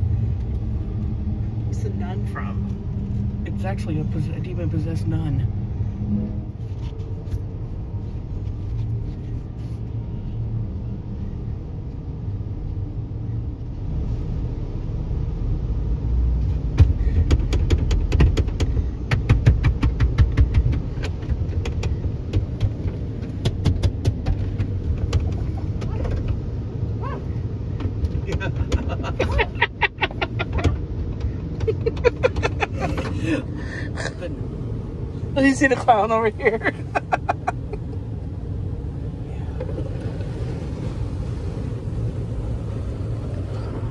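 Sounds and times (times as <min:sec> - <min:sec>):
car wash machinery rumble: 0:12.6 - 0:43.9.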